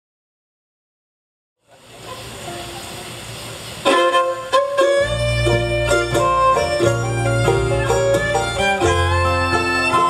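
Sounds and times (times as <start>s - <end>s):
bluegrass string band playing: 1.7s - 10.0s
faint held string notes: 3.8s - 10.0s.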